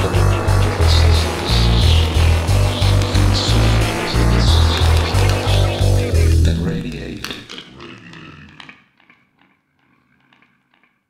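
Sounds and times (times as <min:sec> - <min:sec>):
electronic dub music: 0:00.0 - 0:07.5.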